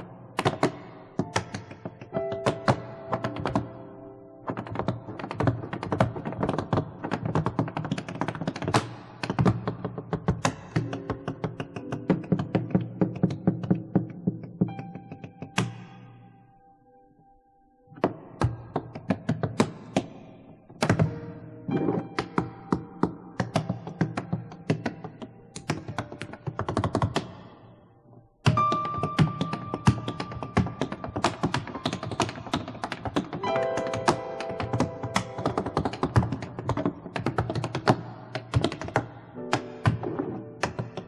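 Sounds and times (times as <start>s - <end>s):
piano notes: 0.0s - 20.0s, 20.6s - 41.0s
tap shoes on wooden stage: 0.3s - 15.8s, 20.8s - 27.5s, 28.4s - 41.0s
tap shoes on wooden floor: 28.5s - 41.0s
piano chord: 33.4s - 36.6s.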